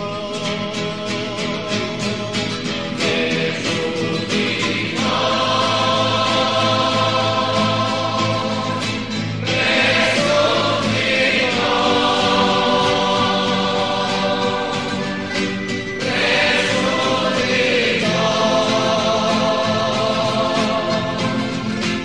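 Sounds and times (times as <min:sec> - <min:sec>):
choir singing a religious song: 0:00.0 - 0:22.0
instrumental accompaniment: 0:02.7 - 0:22.0.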